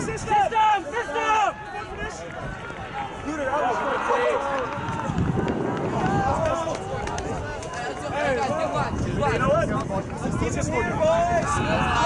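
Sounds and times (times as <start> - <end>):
players calling out: 0.1 - 7.8.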